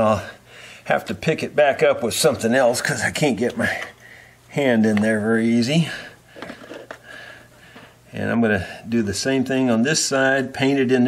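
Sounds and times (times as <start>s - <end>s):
faint clicks and rustles: 6.3s - 8.0s.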